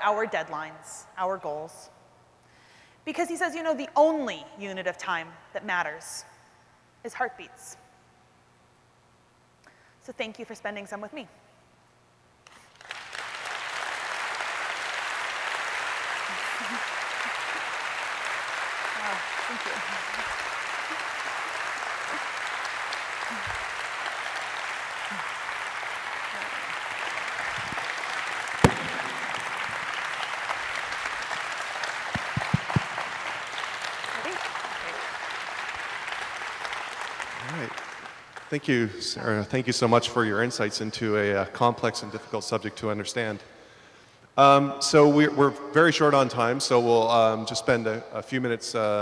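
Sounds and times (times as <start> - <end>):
audience applauding: 12.5 - 38.8.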